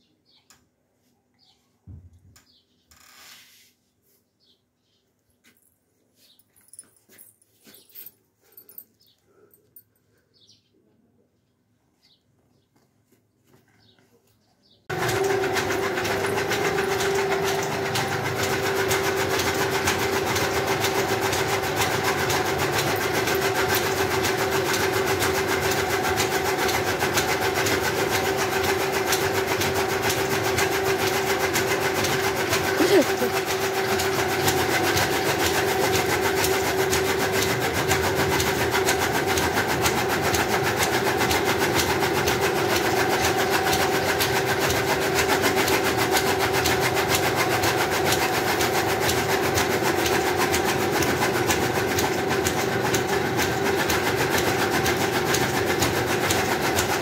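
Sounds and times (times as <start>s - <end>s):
loud machine humming: 14.9s - 57.0s.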